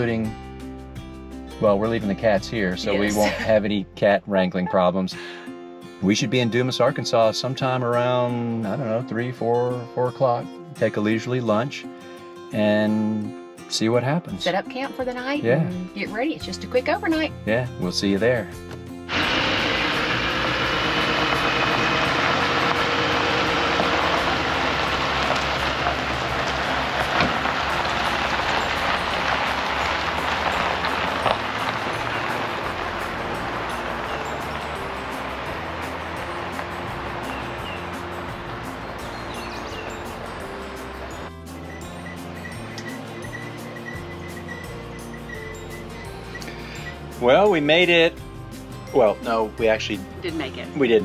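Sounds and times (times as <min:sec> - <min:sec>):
background music: 0:00.0 - 0:51.0
truck driving over gravel: 0:19.1 - 0:46.2.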